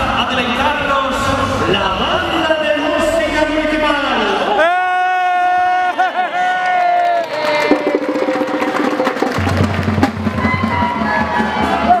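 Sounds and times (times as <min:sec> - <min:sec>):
fast percussion ensemble: 0:07.3 - 0:12.0.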